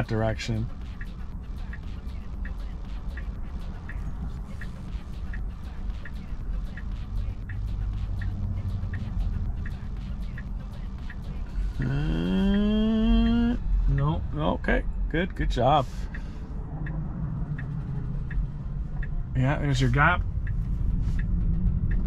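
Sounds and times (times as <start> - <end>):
turn signal ticking: 0.0 - 22.0
car cabin rumble: 3.1 - 22.0
drawn-out voice: 11.7 - 13.6.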